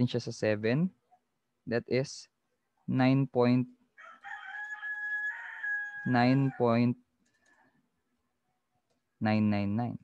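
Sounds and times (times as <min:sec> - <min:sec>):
rooster crowing: 0:04.0 - 0:06.8.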